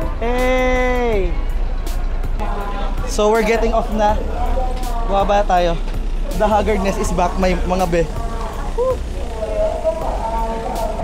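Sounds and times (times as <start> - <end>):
passengers talking: 0.0 - 11.0
steady low rumble: 1.4 - 11.0.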